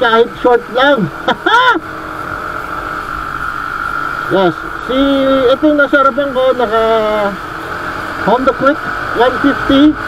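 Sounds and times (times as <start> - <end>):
motor scooter engine whine: 0.0 - 10.0
rider vocal sound: 0.0 - 10.0.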